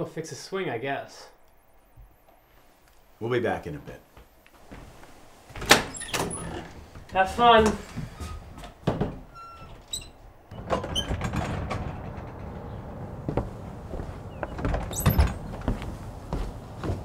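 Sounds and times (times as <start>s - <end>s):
door shutting thump: 10.6s - 15.8s.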